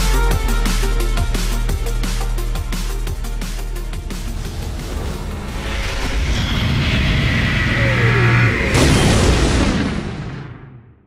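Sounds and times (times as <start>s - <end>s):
falling whine: 3.7s - 10.8s
rumbling build: 3.8s - 11.0s
explosion-like hit: 4.3s - 11.0s.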